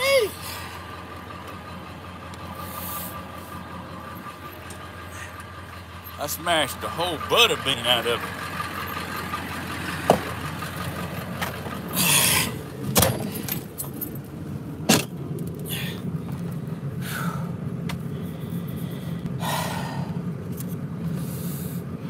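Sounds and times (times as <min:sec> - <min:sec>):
vehicle engine idling: 0:00.0 - 0:22.0
sharp clicks and knocks: 0:10.0 - 0:10.4.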